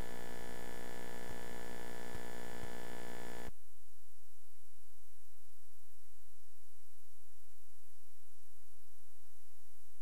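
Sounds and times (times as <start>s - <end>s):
faint hiss: 0.0s - 3.5s
steady electrical buzz: 0.0s - 3.5s.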